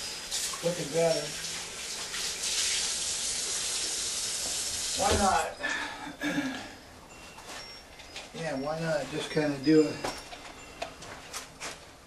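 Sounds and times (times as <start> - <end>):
faucet water running into sink: 0.0 - 5.4.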